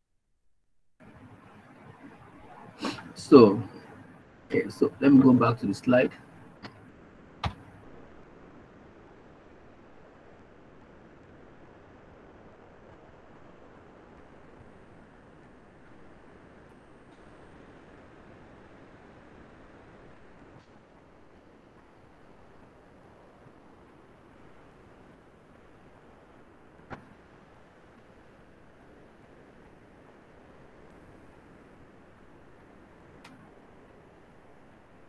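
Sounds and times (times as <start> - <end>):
faint background hiss: 1.0 - 35.0.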